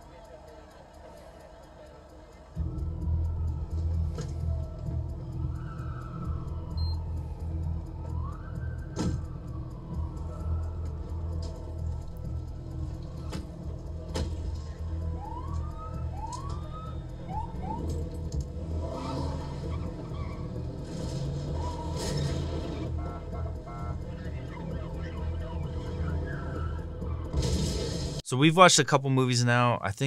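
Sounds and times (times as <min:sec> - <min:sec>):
low vehicle rumble: 0:02.5 - 0:28.2
siren whoops: 0:02.6 - 0:13.4, 0:14.8 - 0:27.4.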